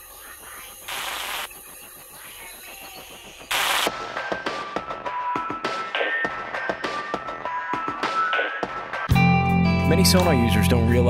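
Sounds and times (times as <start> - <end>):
stuttering digital clicking: 0.0 - 3.9
bursts of static noise: 0.0 - 4.0.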